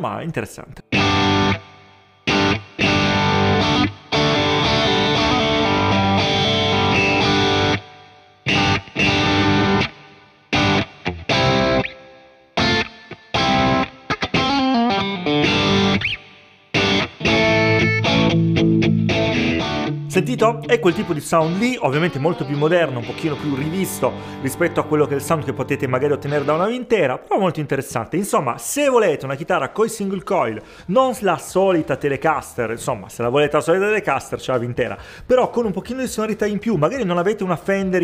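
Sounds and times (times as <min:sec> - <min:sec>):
electric guitar chords: 0:00.9 - 0:26.9
sliding guitar notes: 0:00.9 - 0:26.9.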